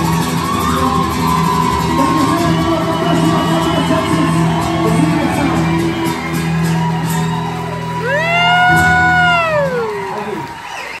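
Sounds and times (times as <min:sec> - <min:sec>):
person whooping: 0:00.0 - 0:11.0.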